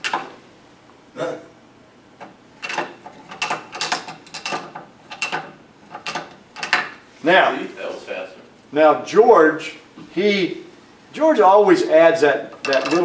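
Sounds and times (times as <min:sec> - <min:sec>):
wooden toy clacking on ladder: 0:02.6 - 0:07.0, 0:12.6 - 0:13.0.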